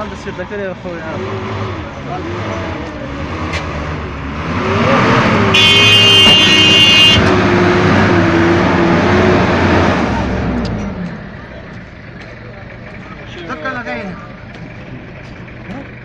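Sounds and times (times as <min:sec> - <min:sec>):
van engine running: 0:00.0 - 0:16.0.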